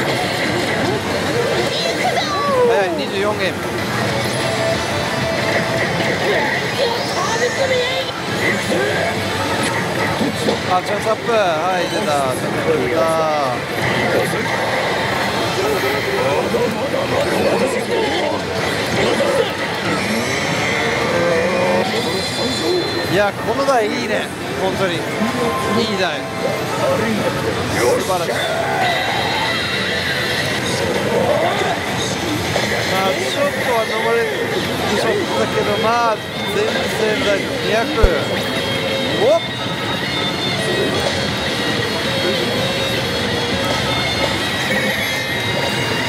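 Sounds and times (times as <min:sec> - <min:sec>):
busy gaming parlor din: 0:00.0 - 0:46.0
animated character voices: 0:06.1 - 0:10.6.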